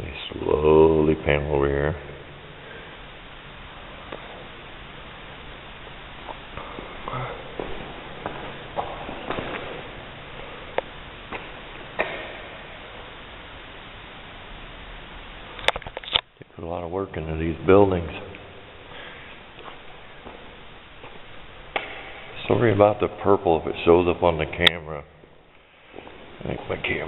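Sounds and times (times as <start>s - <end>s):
steady hiss: 0.0s - 27.0s.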